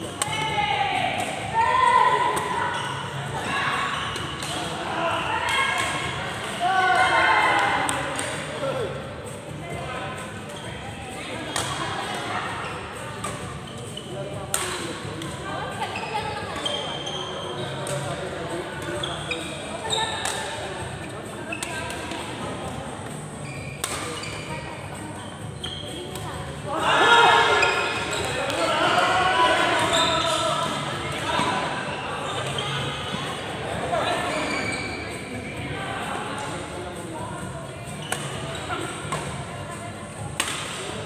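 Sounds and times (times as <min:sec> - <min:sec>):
people shouting: 0:06.6 - 0:07.9, 0:26.7 - 0:27.8
racket hitting shuttlecock: 0:14.5 - 0:14.8, 0:20.2 - 0:20.5, 0:23.8 - 0:24.1, 0:38.1 - 0:38.4, 0:39.1 - 0:39.4, 0:40.4 - 0:40.8.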